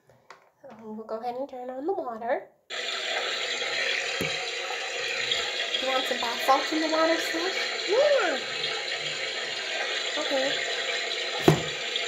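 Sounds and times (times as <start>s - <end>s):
tap water running into bath: 2.7s - 12.0s.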